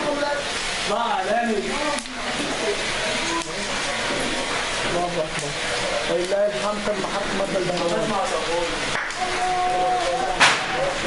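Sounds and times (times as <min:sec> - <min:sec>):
large fire roaring: 0:00.0 - 0:11.0.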